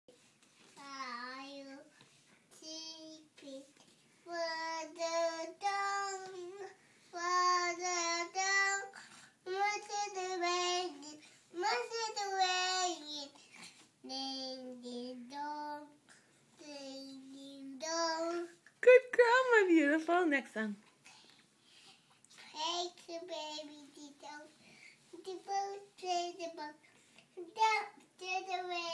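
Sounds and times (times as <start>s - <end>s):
toddler girl singing: 0.7s - 18.7s, 22.4s - 28.9s.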